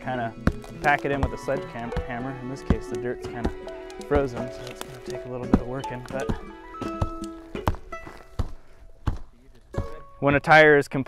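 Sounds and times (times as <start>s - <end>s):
background music with held notes: 0.0s - 9.0s, 9.7s - 10.5s
sledgehammer striking dirt: 0.0s - 10.0s.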